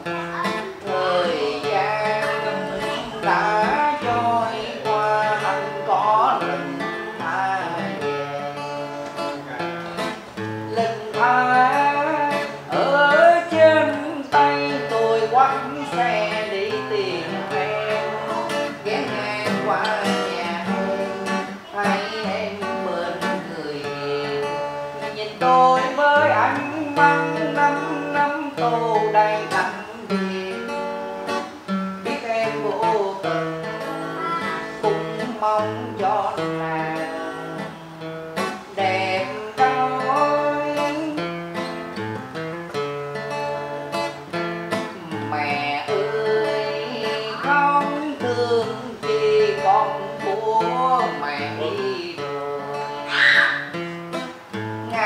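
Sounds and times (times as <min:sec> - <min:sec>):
man singing: 0:00.0 - 0:42.0, 0:44.0 - 0:55.0
acoustic guitar strumming: 0:00.0 - 0:55.0.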